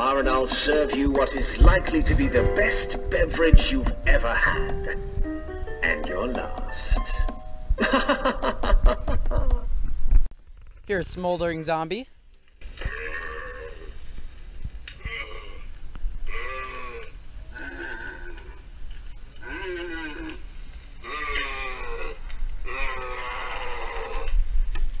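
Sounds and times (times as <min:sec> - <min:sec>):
recorded zombie groans: 0:21.0 - 0:24.4.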